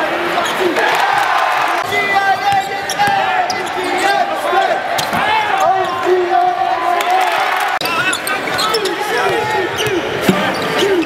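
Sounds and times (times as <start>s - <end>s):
voices of players and spectators: 0.0s - 11.0s
sneakers squeaking: 1.8s - 4.2s, 4.9s - 6.2s, 7.8s - 11.0s.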